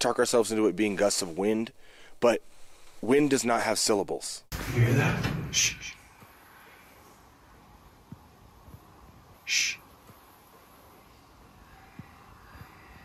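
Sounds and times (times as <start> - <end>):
faint hiss: 0.1 - 13.0
breathy whisper burst: 9.4 - 9.8.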